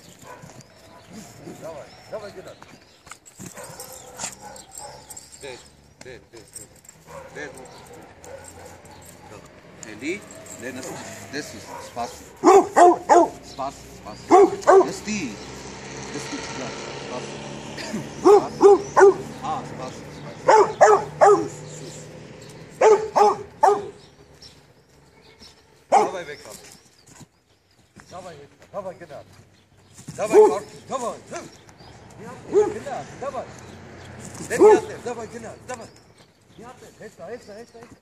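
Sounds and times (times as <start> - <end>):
dog barking: 0.2 - 1.5, 3.5 - 5.3, 7.0 - 9.5, 10.3 - 13.5, 14.2 - 15.1, 18.2 - 19.3, 20.3 - 21.8, 22.8 - 24.0, 25.9 - 26.3, 30.3 - 30.7, 32.4 - 33.1, 34.5 - 35.1.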